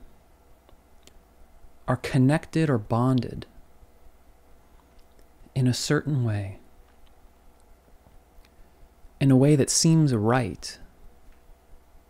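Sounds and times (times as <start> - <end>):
low steady hum: 0.0 - 12.0
man speaking: 1.9 - 3.5, 5.5 - 6.6, 9.2 - 10.8.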